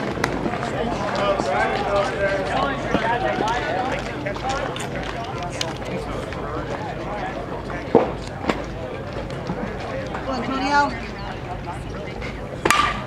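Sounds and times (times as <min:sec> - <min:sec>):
spectators' voices: 0:00.0 - 0:13.0
metal bat hitting ball: 0:12.6 - 0:13.0.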